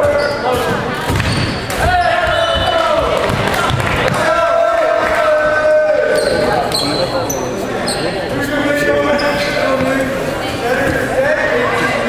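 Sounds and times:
sneakers squeaking on gym floor: 0.0s - 3.4s, 6.1s - 8.4s, 9.0s - 10.0s
echoing chatter of people: 0.0s - 12.0s.

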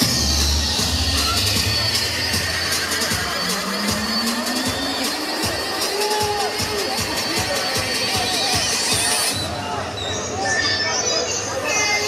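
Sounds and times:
background music with steady beat: 0.0s - 9.5s.

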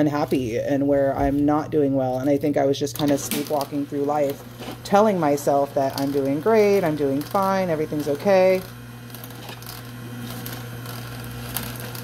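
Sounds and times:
juicer motor hum: 0.0s - 12.0s
crunching of greens: 9.1s - 12.0s.

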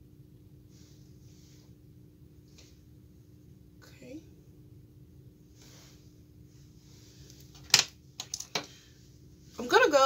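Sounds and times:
woman speaking: 3.8s - 4.3s, 9.6s - 10.0s.

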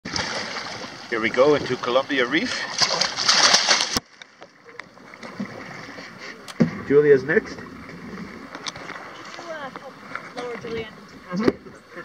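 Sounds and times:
water lapping against boat: 0.0s - 12.0s.

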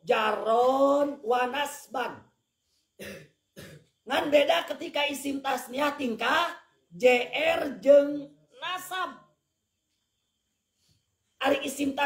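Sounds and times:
throat clearing: 3.0s - 3.9s.

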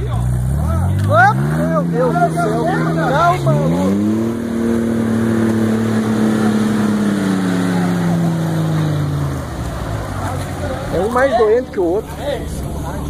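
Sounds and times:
engine revving hard: 0.0s - 11.1s.

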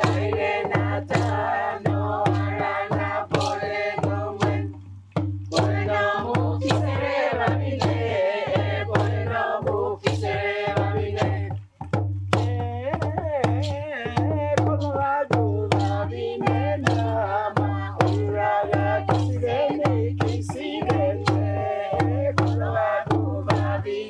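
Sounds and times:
group of voices singing: 0.0s - 11.6s, 13.4s - 24.0s
hand drums beating: 0.0s - 24.0s.

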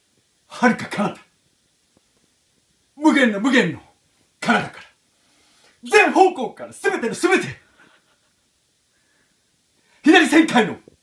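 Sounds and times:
man speaking: 0.5s - 1.3s, 3.0s - 5.0s, 5.8s - 7.7s, 10.0s - 10.9s.

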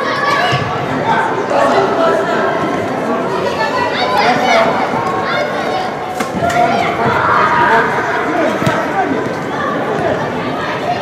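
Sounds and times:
people shouting in indoor hall: 0.0s - 11.0s.

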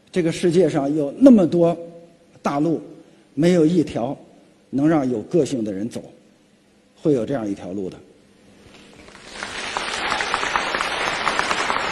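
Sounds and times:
audience applauding: 9.0s - 11.9s.

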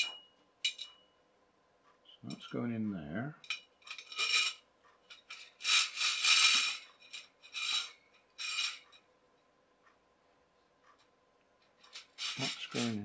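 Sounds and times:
metal scraping inside tube: 5.2s - 8.9s, 11.8s - 13.0s.

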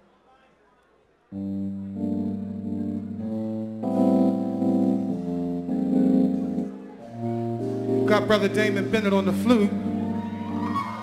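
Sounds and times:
electric keyboard tremolo chords: 1.3s - 11.0s
held bass note: 1.4s - 11.0s.

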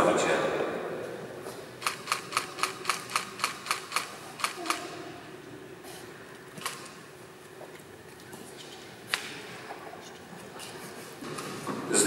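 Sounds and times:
camera shutter burst clicks: 1.8s - 5.0s, 6.6s - 7.0s.

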